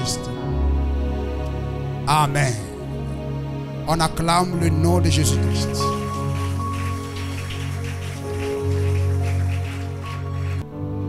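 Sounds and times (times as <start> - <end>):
electronic keyboard chords: 5.3 - 11.0
congregation applauding: 5.7 - 10.8.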